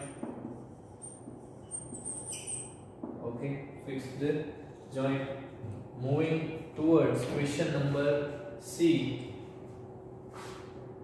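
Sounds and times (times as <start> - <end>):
whiteboard marker squeaking: 0.9 - 2.8.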